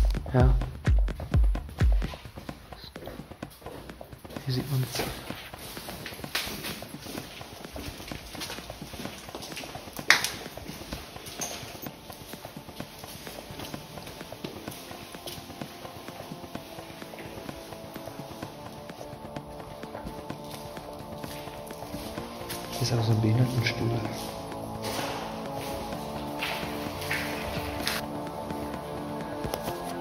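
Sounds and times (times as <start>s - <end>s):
footsteps on hard floor: 0.0s - 30.0s
soft music with sustained tones: 0.0s - 30.0s.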